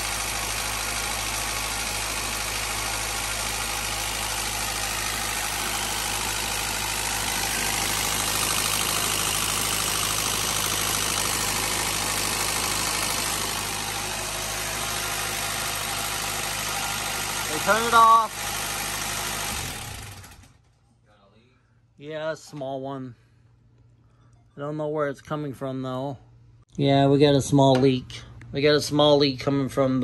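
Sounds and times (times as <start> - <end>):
car engine idling: 0.0 - 20.6.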